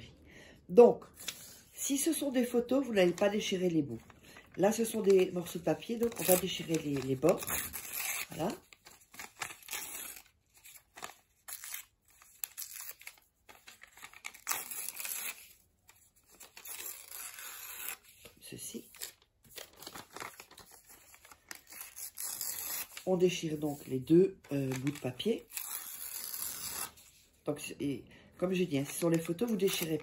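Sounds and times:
paper rustling: 2.8 - 27.3, 28.5 - 30.0
paper tearing: 4.8 - 15.6, 16.3 - 18.2, 18.8 - 23.1, 24.6 - 27.1.

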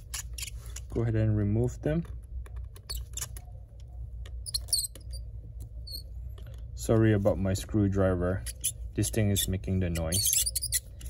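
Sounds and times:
screwdriver squeaking and clicking: 0.0 - 1.0, 2.3 - 6.6, 8.4 - 11.0.

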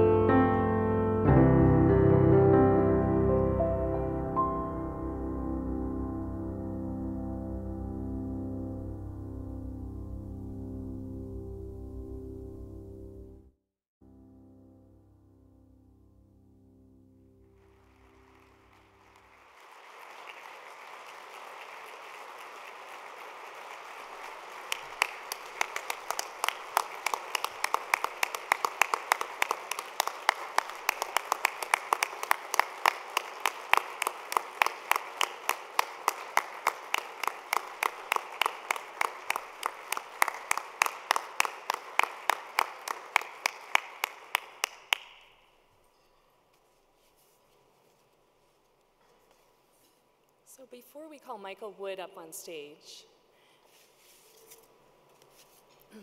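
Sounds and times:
music: 0.0 - 19.7
audience applause: 17.6 - 45.2
person clapping close to microphone: 19.0 - 45.4.

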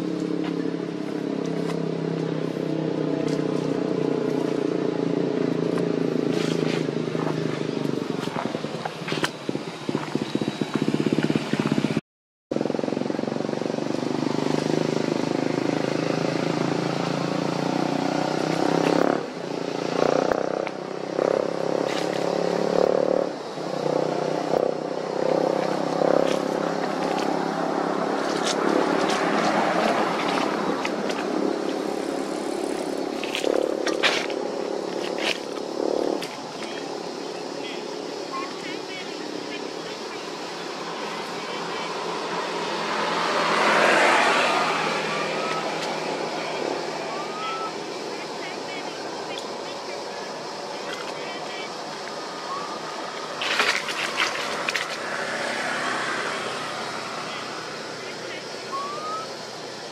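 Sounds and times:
vehicle engine droning: 0.0 - 59.9.

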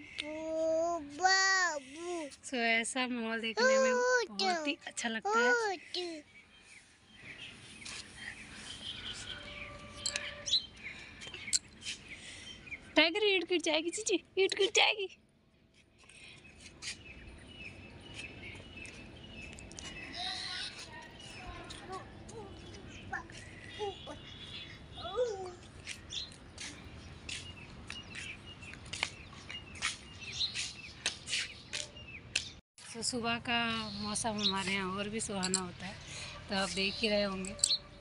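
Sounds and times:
small birds chirping: 0.0 - 38.0.

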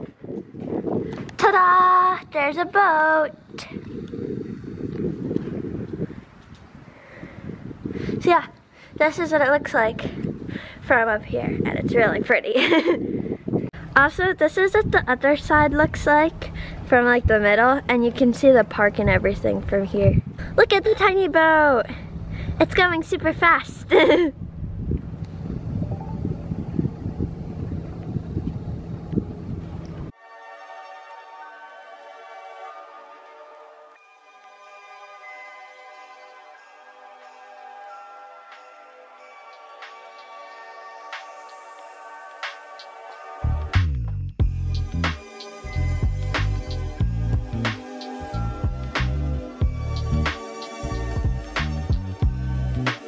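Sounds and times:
wind buffeting microphone: 0.0 - 30.2
person laughing: 12.6 - 13.2, 23.8 - 24.4.

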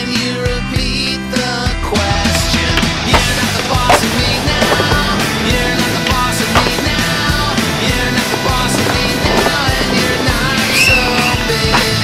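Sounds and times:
punk rock music: 0.0 - 12.0
skateboard wheels on concrete: 1.8 - 12.0
skateboard deck clack: 2.5 - 12.0.

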